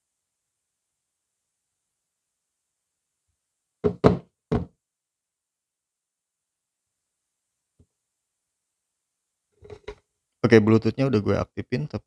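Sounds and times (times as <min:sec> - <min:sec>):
smartphone knocking on desk: 0:03.8 - 0:04.7.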